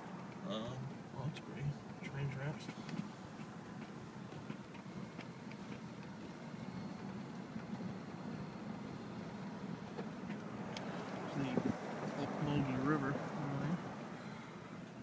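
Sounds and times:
car rumbling from inside cabin: 0:00.0 - 0:15.0.

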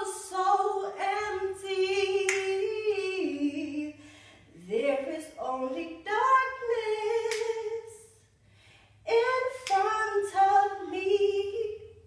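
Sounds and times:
woman singing a cappella: 0:00.0 - 0:08.3, 0:09.0 - 0:12.0.

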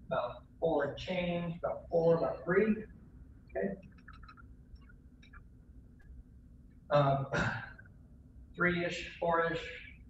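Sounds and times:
low steady room hum: 0:00.0 - 0:10.0.

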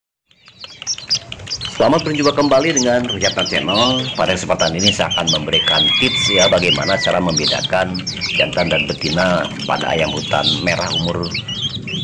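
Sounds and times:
chicks peeping: 0:00.3 - 0:12.0.

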